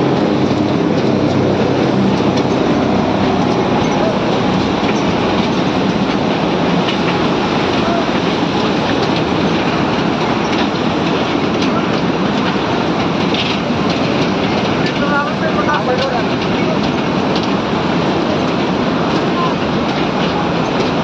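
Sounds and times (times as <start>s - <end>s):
mountain torrent rushing: 0.0s - 21.0s
faint voices: 7.6s - 8.7s, 14.1s - 21.0s.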